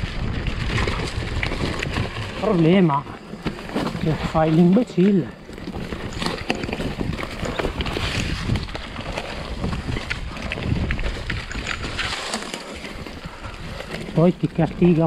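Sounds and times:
bike rattling and clacking: 0.0 - 15.0
tyres crunching on dirt trail: 0.0 - 15.0.

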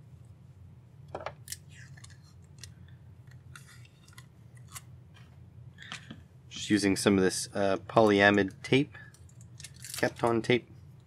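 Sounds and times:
crinkly tape rustle: 9.1 - 10.6.

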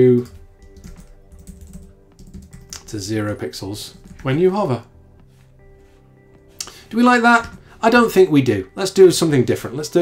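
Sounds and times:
faint background music: 0.0 - 10.0
computer keyboard keystrokes: 0.1 - 2.9.

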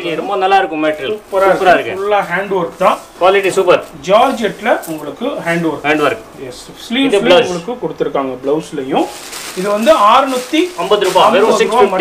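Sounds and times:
person speaking: 0.0 - 12.0
crisp rustle of fabric: 0.9 - 6.2, 8.9 - 12.0.

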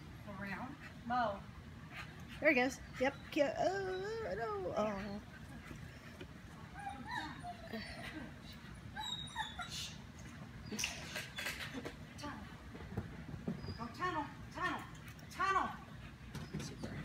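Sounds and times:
dog whining: 3.0 - 5.3, 6.7 - 11.8.

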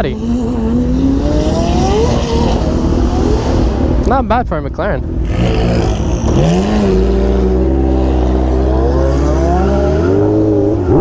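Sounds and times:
vehicle engine accelerating: 0.0 - 4.4, 5.0 - 11.0.

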